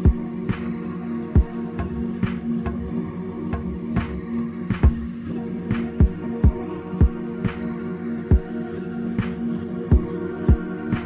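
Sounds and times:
drum machine beat: 0.0s - 0.2s, 1.4s - 1.6s, 4.8s - 5.1s, 6.0s - 7.2s, 8.3s - 8.5s, 9.9s - 11.0s
low synth drone: 0.0s - 11.0s
deep kick drum: 6.0s - 7.2s.

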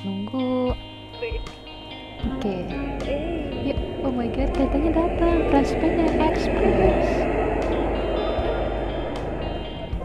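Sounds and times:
background music: 0.0s - 10.0s
diesel train idling: 2.0s - 10.0s.

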